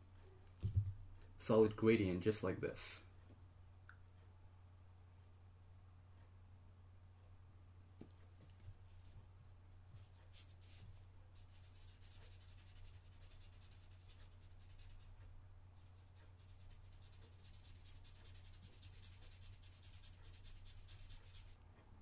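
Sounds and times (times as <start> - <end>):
low steady hum: 0.0 - 22.0
marker scratching on paper: 10.0 - 21.6.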